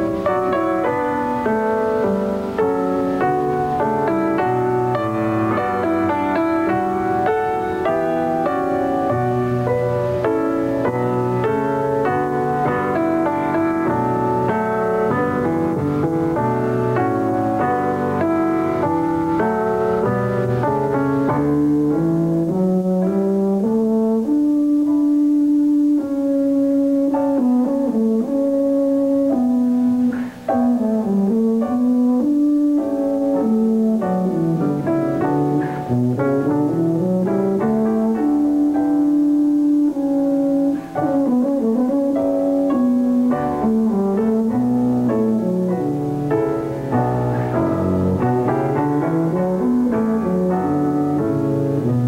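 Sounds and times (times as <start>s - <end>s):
piano accompaniment: 0.0s - 52.0s
tuba playing slow melody: 0.0s - 52.0s.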